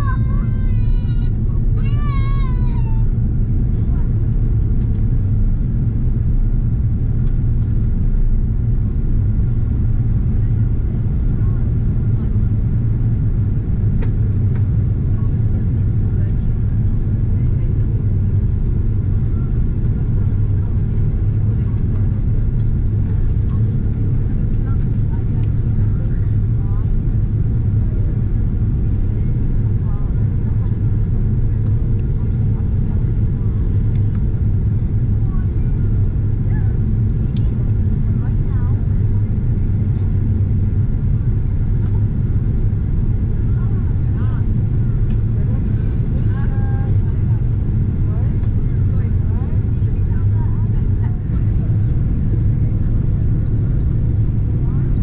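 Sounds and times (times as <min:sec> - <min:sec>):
jet airliner cabin roar: 0:00.0 - 0:55.0.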